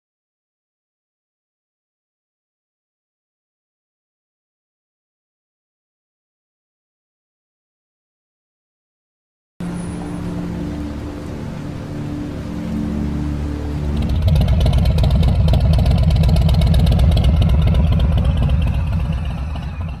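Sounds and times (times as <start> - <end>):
background music: 9.6 - 20.0
motorcycle engine rumbling: 13.8 - 20.0.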